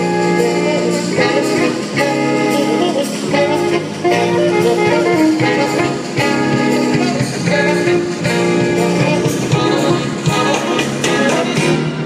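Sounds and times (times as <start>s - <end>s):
live jazz ensemble: 0.0s - 12.0s.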